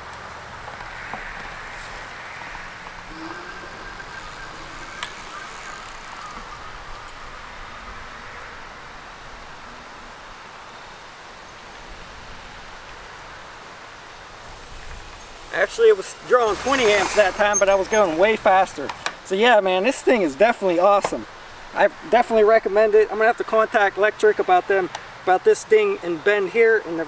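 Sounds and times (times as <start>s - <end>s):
e-bike riding across grass: 0.0s - 27.0s.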